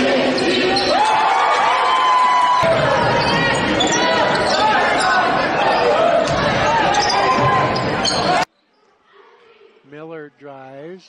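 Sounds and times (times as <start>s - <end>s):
crowd shouting and cheering: 0.0s - 8.5s.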